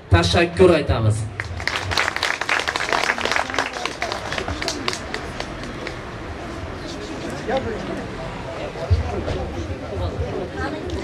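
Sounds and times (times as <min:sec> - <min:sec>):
audience applause: 0:01.4 - 0:06.1.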